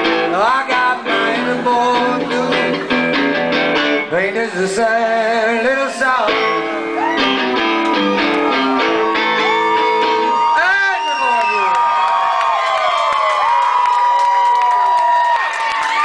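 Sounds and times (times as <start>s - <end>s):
electric guitar strummed chords: 0.0s - 10.5s
audience whooping and cheering: 6.1s - 16.0s.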